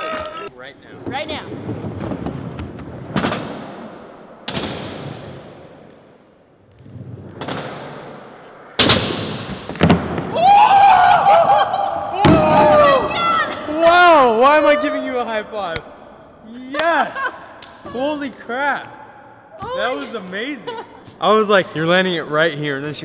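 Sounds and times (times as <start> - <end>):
skateboard wheels rolling on concrete: 0.9 - 4.1
people shouting and cheering: 10.3 - 15.5.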